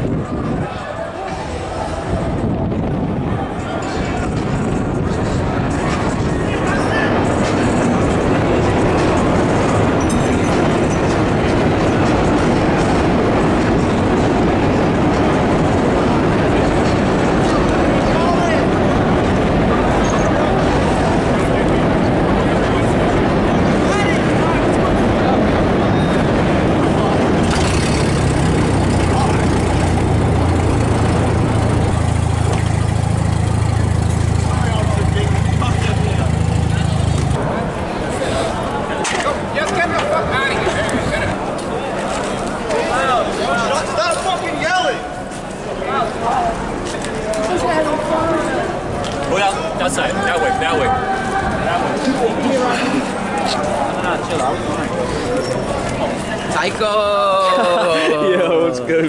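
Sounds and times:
low steady drone: 0.0 - 39.0
crowd shouting: 49.4 - 56.2.

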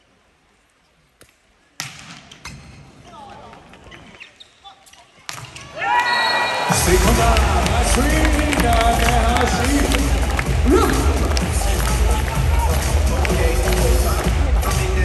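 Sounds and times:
crowd voices: 5.1 - 15.0
arena music: 6.6 - 15.0.

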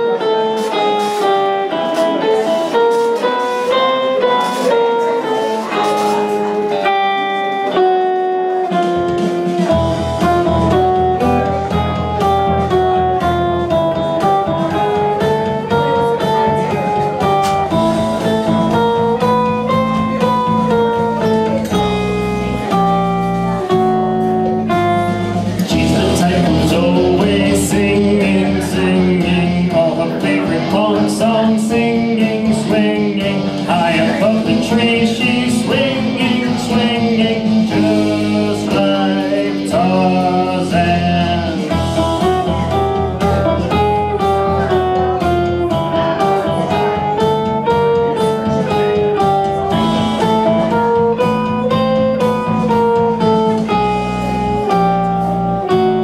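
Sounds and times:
electric guitar melody: 0.0 - 56.0
heavy metal backing track: 0.0 - 56.0.

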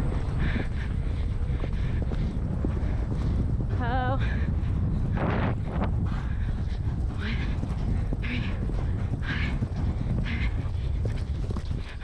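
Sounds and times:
horse hoofbeats on grass: 0.0 - 12.0
wind noise on microphone: 0.0 - 12.0.

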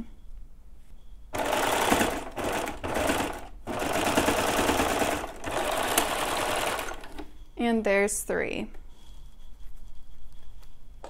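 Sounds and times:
serger stitching fabric: 1.4 - 7.3.

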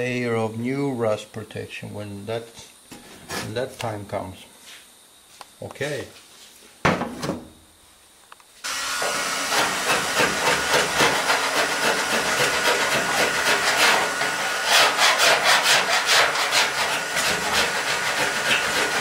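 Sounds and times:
heat gun blowing: 8.6 - 19.0
scraper rasping on metal: 9.5 - 19.0.

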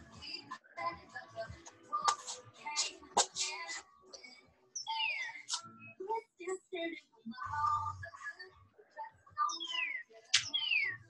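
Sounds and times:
sharp click: 10.4 - 10.6.

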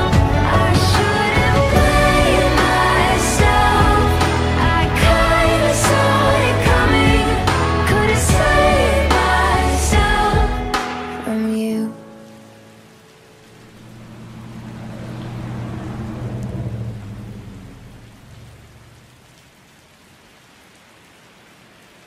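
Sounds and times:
rain: 0.0 - 22.0
low rumble of thunder: 13.7 - 19.3.

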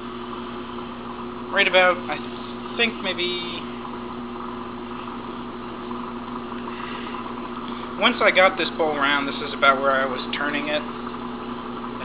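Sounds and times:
wood lathe motor hum and whir: 0.0 - 12.0.

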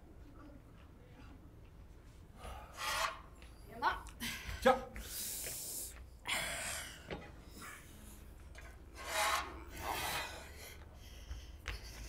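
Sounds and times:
rasping scrape: 2.7 - 3.3, 8.9 - 10.5.

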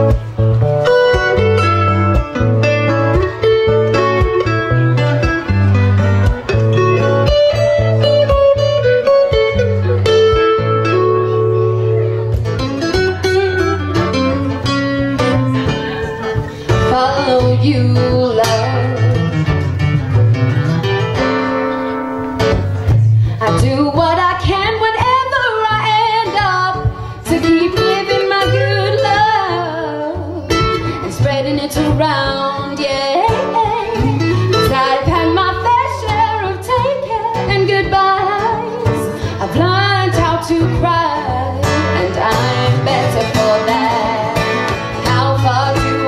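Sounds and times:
acoustic guitars strumming: 0.0 - 46.0
woman singing: 16.7 - 19.3, 23.4 - 46.0.

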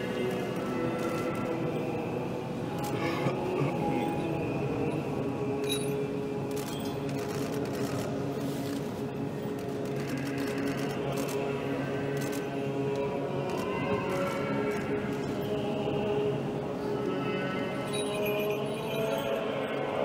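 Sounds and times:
crowd noise in church: 0.0 - 20.0
faint choral chant: 0.0 - 20.0.

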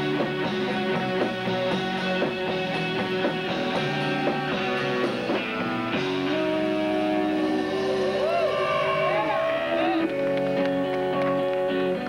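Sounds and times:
guitar swooping glides: 0.0 - 12.0
live rock band playing: 0.0 - 12.0.

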